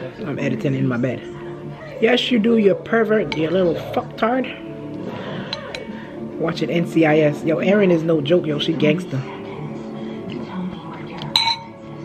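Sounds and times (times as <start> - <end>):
faint speech: 0.0 - 6.5
background music: 0.0 - 12.0
metal spoon clinking on dish: 11.3 - 11.9.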